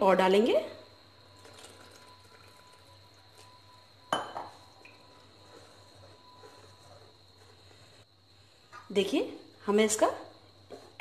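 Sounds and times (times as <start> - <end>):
water poured into batter: 1.2 - 3.8.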